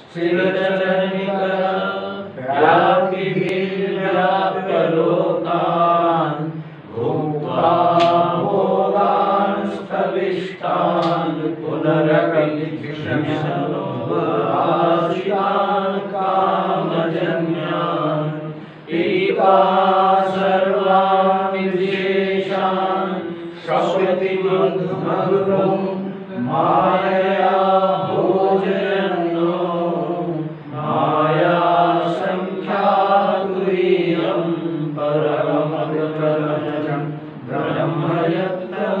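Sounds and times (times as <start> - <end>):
man chanting verses: 0.0 - 39.0.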